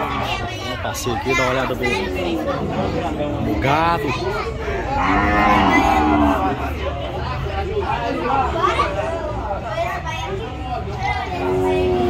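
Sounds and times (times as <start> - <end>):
people chattering: 0.0 - 12.0
cow mooing: 4.9 - 6.7, 11.3 - 12.0.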